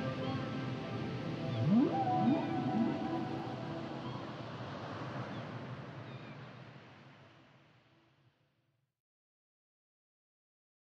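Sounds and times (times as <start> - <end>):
whale calls: 1.6 - 4.4.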